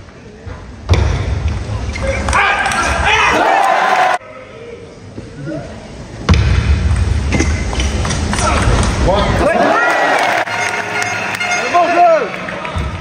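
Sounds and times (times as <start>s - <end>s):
spectators shouting: 2.3s - 4.2s, 9.4s - 12.3s
crowd noise: 7.1s - 13.0s.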